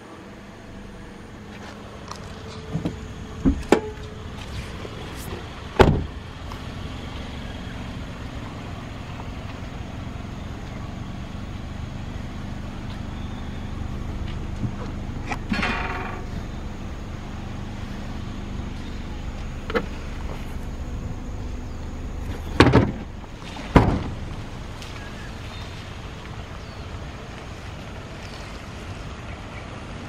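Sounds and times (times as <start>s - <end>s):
car engine idling: 0.0s - 30.0s
car door shutting: 2.1s - 6.2s, 18.8s - 20.6s, 22.2s - 25.3s.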